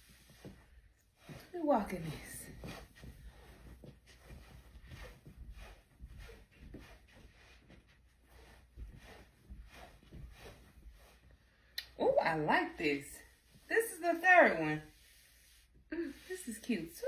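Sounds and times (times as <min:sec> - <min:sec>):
footsteps on carpet: 0:00.0 - 0:11.3.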